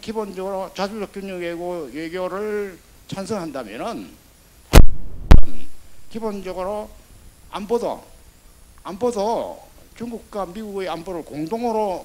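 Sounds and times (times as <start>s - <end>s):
thumps on microphone: 4.7s - 5.8s.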